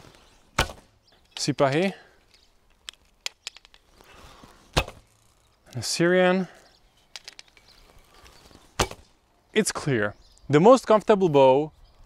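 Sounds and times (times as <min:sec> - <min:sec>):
bow shot crack: 0:00.5 - 0:01.0, 0:04.7 - 0:05.1, 0:08.8 - 0:09.1.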